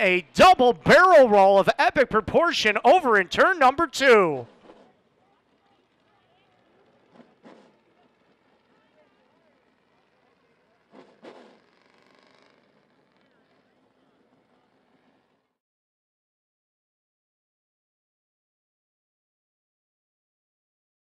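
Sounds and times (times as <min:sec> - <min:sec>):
faint distant voices: 0:04.0 - 0:11.0.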